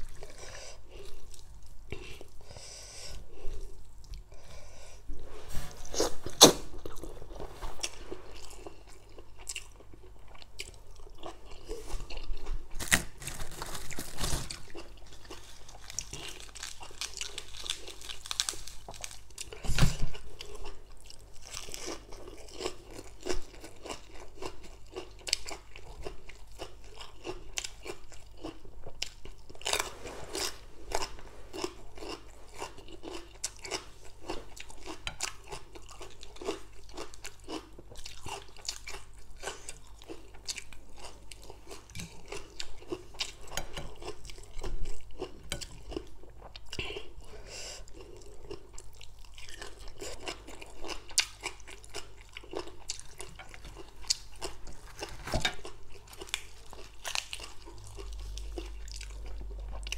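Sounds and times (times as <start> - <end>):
person chewing and crunching food: 0.0 - 59.9.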